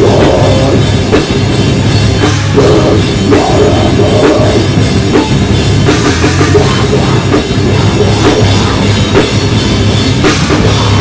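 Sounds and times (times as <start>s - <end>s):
bass guitar: 0.0s - 11.0s
heavy rock band playing live: 0.0s - 11.0s
pounding drum kit with cymbals: 0.0s - 11.0s.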